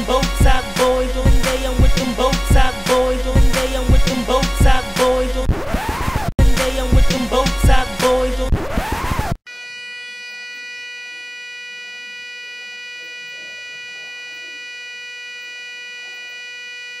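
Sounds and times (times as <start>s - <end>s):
rap music: 0.0s - 9.3s
steady electronic buzz tone: 9.5s - 17.0s.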